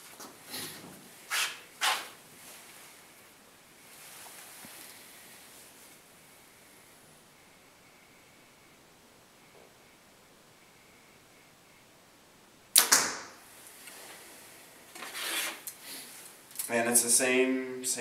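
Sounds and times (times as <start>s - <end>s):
bow shot cracks: 12.7s - 13.4s
arrow striking target: 12.8s - 13.4s.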